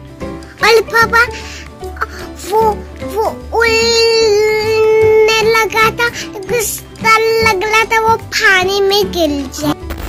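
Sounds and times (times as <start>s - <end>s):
child singing: 2.4s - 9.8s.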